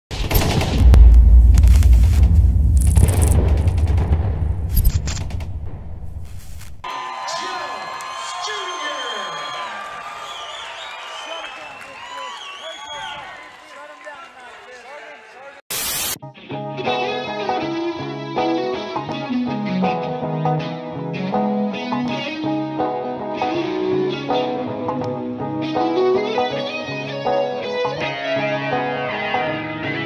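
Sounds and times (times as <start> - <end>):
deep booming rumble with hiss: 0.4 - 6.2
crowd shouting: 6.8 - 14.8.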